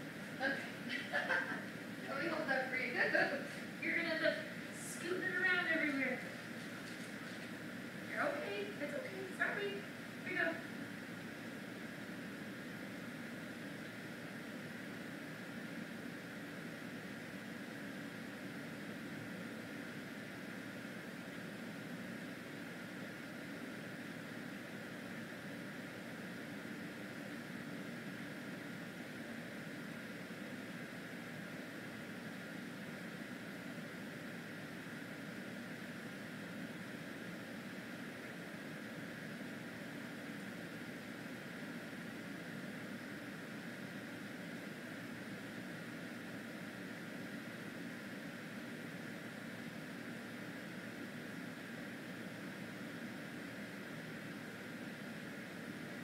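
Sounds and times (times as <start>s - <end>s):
air-handling fan hum and hiss: 0.0s - 56.0s.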